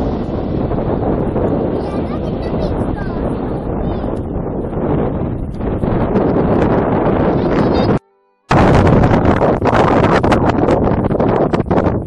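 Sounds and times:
distant jet airliner roar: 0.0 - 10.6
wind buffeting microphone: 0.0 - 12.0.

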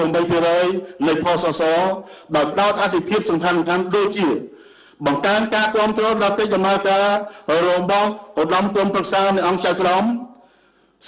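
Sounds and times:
man reading aloud in monotone: 0.0 - 11.0.

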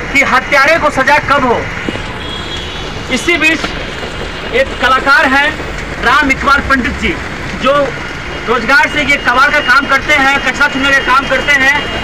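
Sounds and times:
man speaking: 0.0 - 1.8, 3.1 - 3.8, 4.5 - 12.0
road traffic rushing: 0.0 - 12.0.

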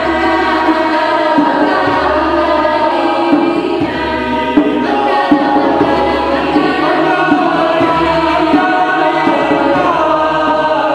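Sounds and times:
a cappella choir singing: 0.0 - 10.9.

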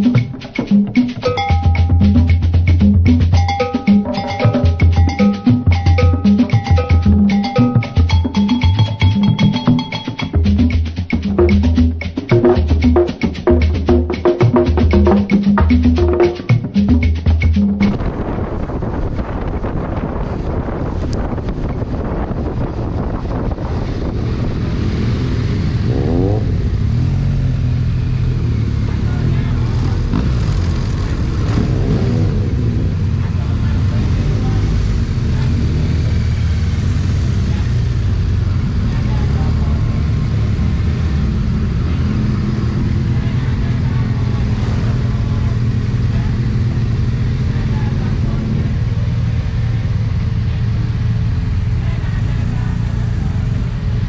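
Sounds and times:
motorcycle engines running: 19.3 - 54.0.

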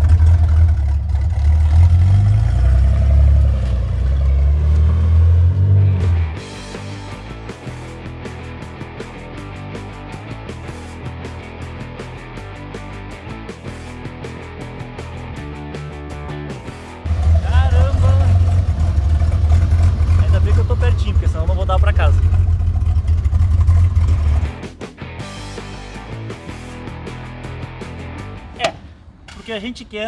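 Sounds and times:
engine rumbling: 0.0 - 30.0
background music: 3.8 - 19.0, 24.3 - 29.4
man's voice: 17.3 - 18.4, 20.2 - 22.3, 28.6 - 30.0.

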